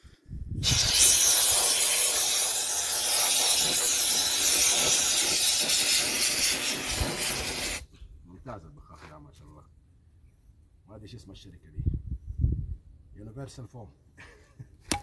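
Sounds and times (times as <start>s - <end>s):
spray foam can hissing: 0.6s - 7.9s.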